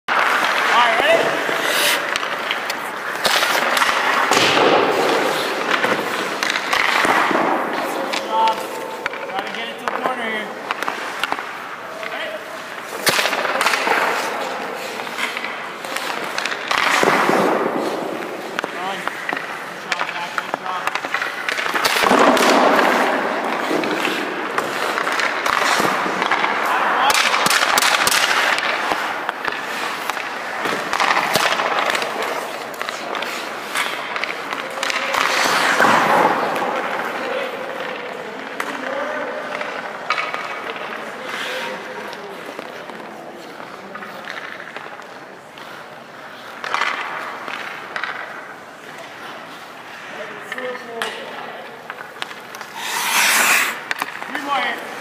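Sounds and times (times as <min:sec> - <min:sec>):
skate blades scraping ice: 0:00.1 - 0:55.0
sticks and pucks striking: 0:00.1 - 0:55.0.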